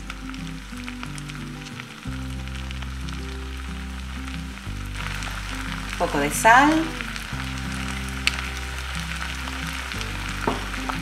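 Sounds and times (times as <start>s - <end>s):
background music: 0.0s - 11.0s
food sizzling in a pan: 0.0s - 11.0s.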